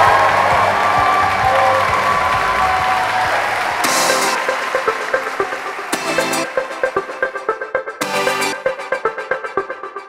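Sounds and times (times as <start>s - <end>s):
guests applauding and cheering: 0.0s - 7.4s
music beat: 0.0s - 10.0s
music playing: 0.0s - 10.0s.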